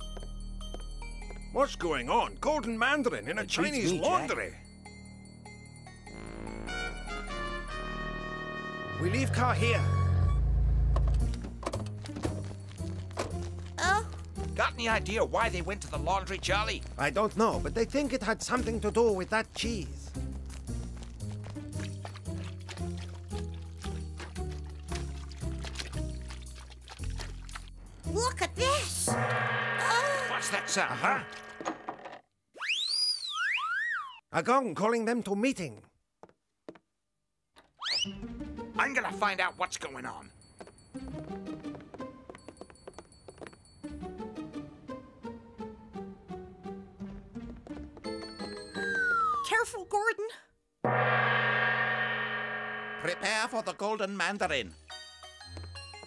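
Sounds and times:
background music: 0.0 - 31.9
cartoon car engine rumble: 8.9 - 11.6
cartoon rising whistle: 29.1 - 31.9, 32.6 - 34.1.

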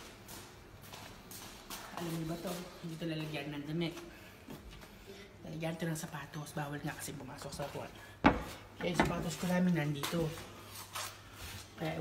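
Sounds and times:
soft footsteps on hard floor: 0.0 - 5.0, 7.4 - 12.0.

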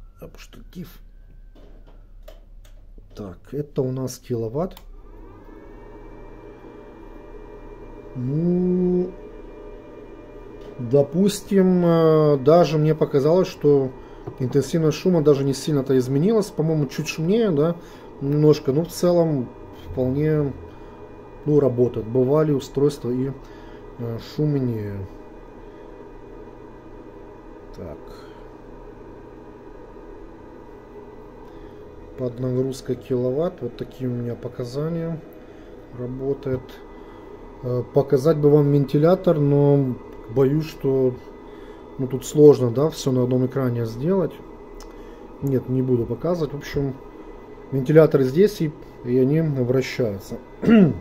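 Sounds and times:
constant hum: 0.0 - 51.0
cooling fans whirring: 0.0 - 51.0
inverter whine: 0.0 - 51.0.

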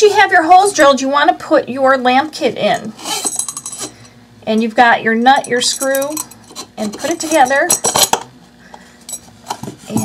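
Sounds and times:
rubbing of lamp parts: 2.9 - 4.0, 5.8 - 8.2.

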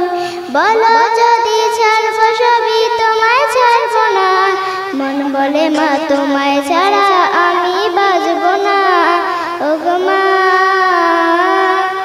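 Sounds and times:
girl singing into microphone: 0.0 - 12.0.

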